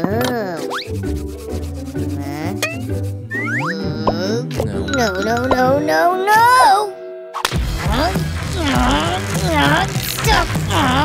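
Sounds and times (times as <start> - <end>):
light background music: 0.0 - 11.0
hands rubbing together: 0.6 - 3.6.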